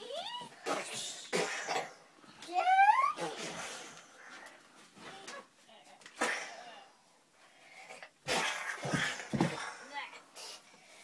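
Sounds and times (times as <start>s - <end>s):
child making play-fight noises: 0.0s - 0.8s, 2.4s - 3.5s.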